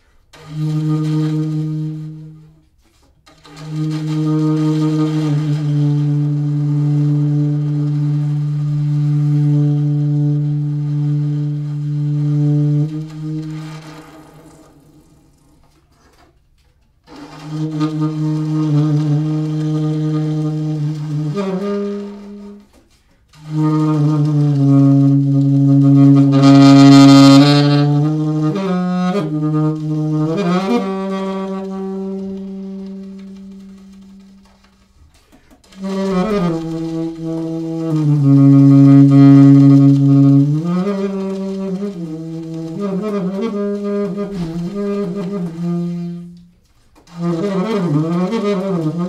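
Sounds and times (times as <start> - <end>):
saxophone long low note: 0.3 - 2.7, 3.3 - 16.3, 17.1 - 34.9, 35.6 - 49.0.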